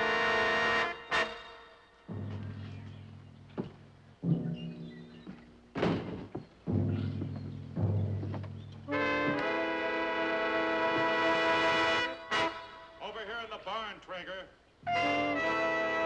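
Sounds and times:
low struck orchestral notes: 0:00.0 - 0:05.8, 0:06.7 - 0:12.8
percussion hits: 0:02.0 - 0:12.6
loud brass chord: 0:08.9 - 0:13.0, 0:14.9 - 0:16.0.

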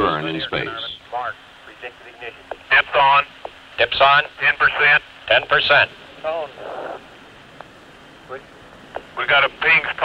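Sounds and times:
radio voice word: 0:00.0 - 0:07.0, 0:09.2 - 0:10.0
radio static burst: 0:00.0 - 0:07.2, 0:08.9 - 0:10.0
low steady line hiss: 0:00.0 - 0:10.0.

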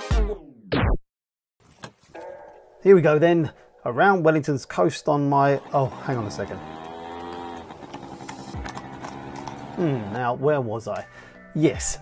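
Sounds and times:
scooter engine running: 0:05.1 - 0:10.4
horse hooves clip-clopping on road: 0:06.1 - 0:10.0.

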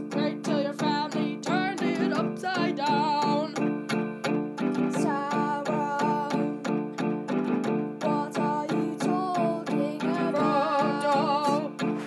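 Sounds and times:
person singing with vibrato: 0:00.0 - 0:03.9, 0:04.7 - 0:07.1, 0:07.7 - 0:12.0
strummed guitar: 0:00.0 - 0:12.0.

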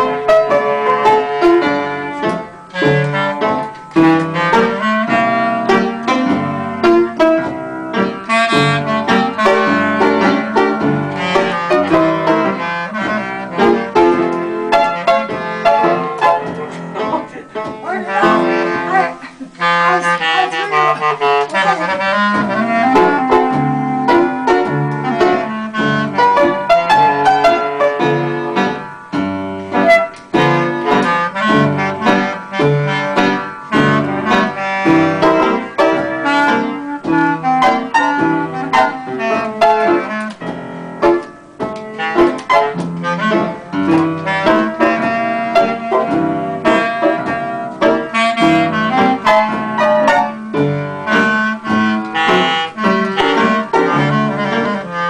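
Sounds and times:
clarinet: 0:00.0 - 0:55.0
piano: 0:00.0 - 0:55.0.

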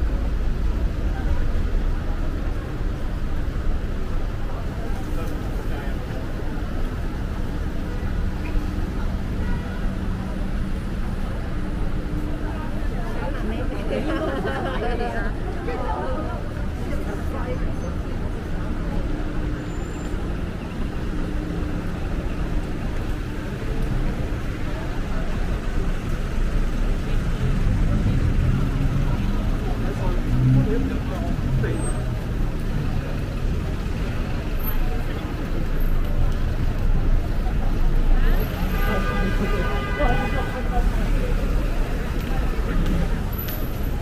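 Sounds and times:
passing cars and buses rumbling: 0:00.0 - 0:44.0.

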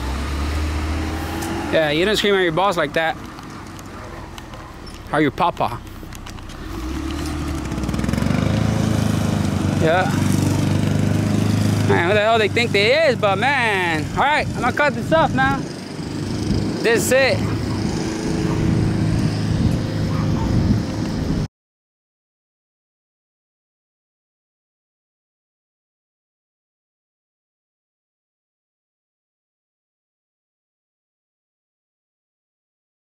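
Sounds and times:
lawn mower engine running: 0:04.8 - 0:21.4.

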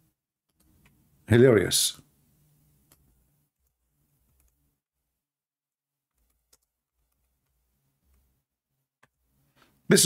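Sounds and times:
soft clicks: 0:00.5 - 0:01.0, 0:02.8 - 0:04.6.

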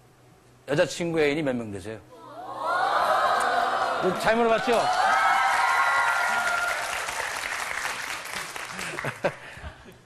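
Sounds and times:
high screaming cheers: 0:02.4 - 0:07.2
audience applauding: 0:03.4 - 0:09.5.

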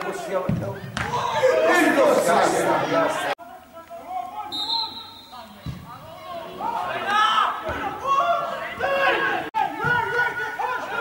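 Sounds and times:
referee's whistle: 0:04.5 - 0:05.7.

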